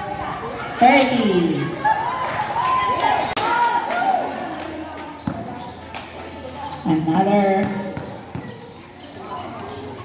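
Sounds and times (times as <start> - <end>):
spectators calling out and cheering: 0.0 - 10.0
basketball bouncing on concrete: 5.2 - 5.8, 7.0 - 8.9.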